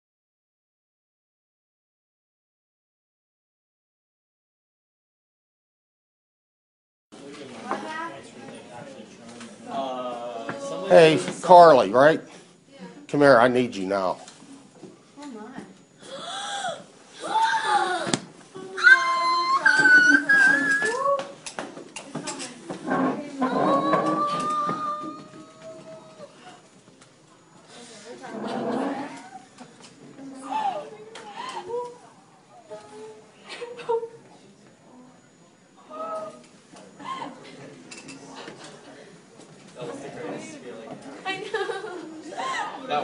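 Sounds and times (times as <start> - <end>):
people talking at once: 27.6 - 43.0.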